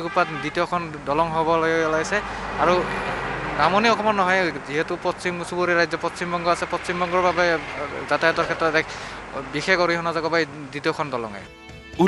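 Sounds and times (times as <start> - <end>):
heavy truck driving past: 1.7 - 4.3.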